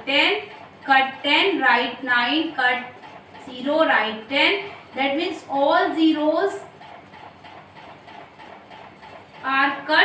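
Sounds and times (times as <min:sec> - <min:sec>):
marker writing on whiteboard: 0:00.1 - 0:09.9.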